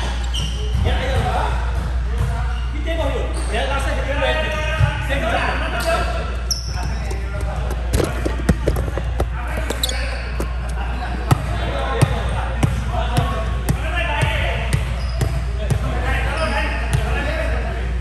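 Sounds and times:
volleyballs knocking in a gym: 0.0 - 3.2, 6.8 - 16.0
players talking: 0.0 - 18.0.

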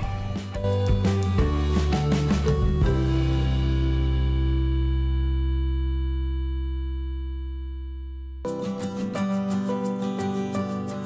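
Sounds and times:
held low chord: 0.0 - 8.6.

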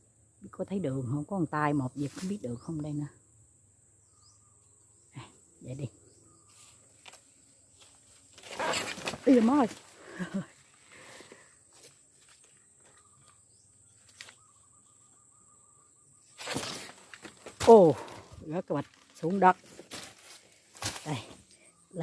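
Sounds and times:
leaves rustling: 6.5 - 13.0, 16.3 - 22.0.

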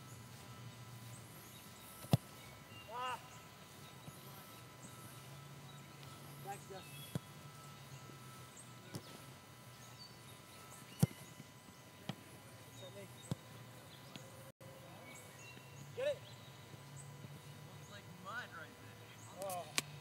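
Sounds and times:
soccer ball kicked thuds: 2.0 - 2.3, 7.0 - 7.4, 10.9 - 13.5.

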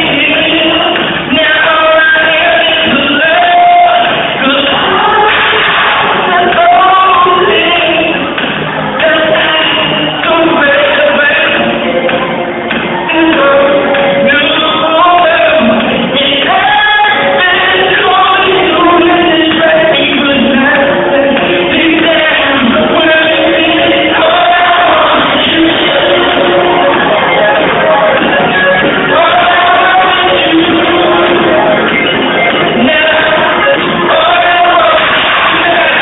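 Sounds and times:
live band playing: 0.0 - 36.0
man singing long notes: 0.0 - 36.0.

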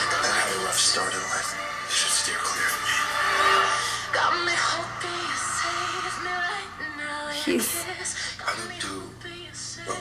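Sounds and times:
dialogue from laptop speaker: 0.0 - 6.1
background music: 0.0 - 10.0.

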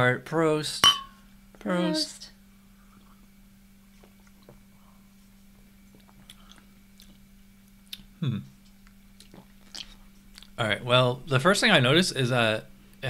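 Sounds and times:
person saying hmm: 8.2 - 8.5
lip smacks and swallowing: 8.7 - 10.6.

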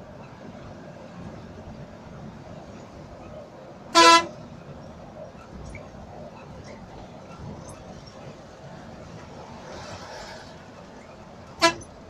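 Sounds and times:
engine and road noise: 0.0 - 12.0
bus horn blast: 3.9 - 4.4, 11.6 - 12.0.

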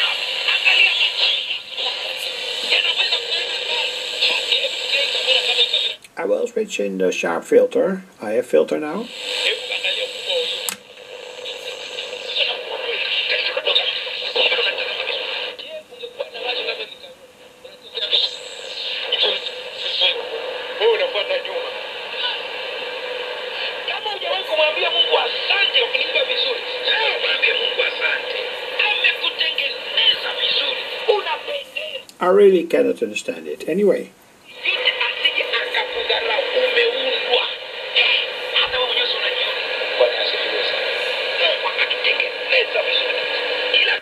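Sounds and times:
person speaking over shortwave radio: 0.0 - 6.0, 8.8 - 32.0, 34.5 - 44.0.

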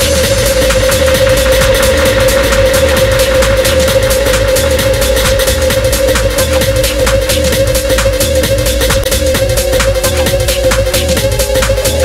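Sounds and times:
techno music: 0.0 - 12.0.

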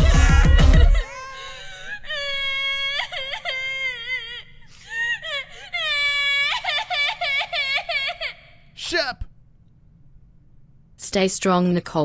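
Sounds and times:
short sobbing cries: 0.0 - 9.2.

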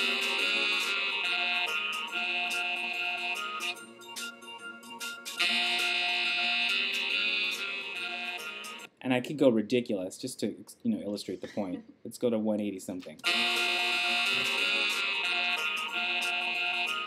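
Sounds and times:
electronic music loop: 0.0 - 8.9, 13.2 - 17.0.

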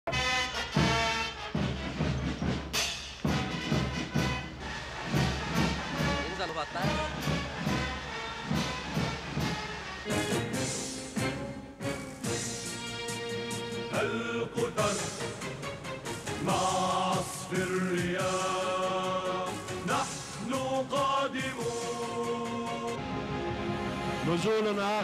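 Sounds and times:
brass marching music: 0.0 - 25.0
steady drum hits: 0.6 - 12.8
person speaking: 6.2 - 7.2.

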